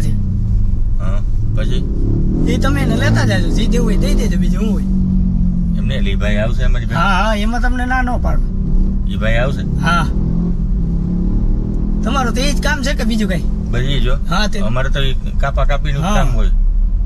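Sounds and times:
car engine rumble: 0.0 - 17.0
road noise inside car: 0.0 - 17.0
men talking: 1.0 - 4.9, 5.6 - 10.2, 12.0 - 16.6.

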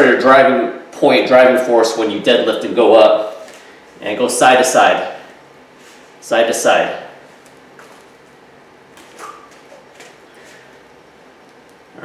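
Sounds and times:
low steady hum: 0.0 - 12.0
person shifting weight rustling: 7.2 - 11.9.

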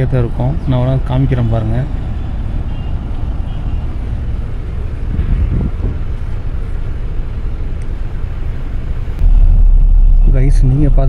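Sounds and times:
bus engine and road rumble: 0.0 - 11.0.

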